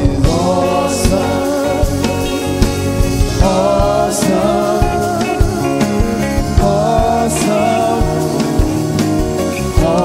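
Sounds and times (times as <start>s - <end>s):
band playing gospel music: 0.0s - 10.0s
group of voices singing: 0.0s - 10.0s.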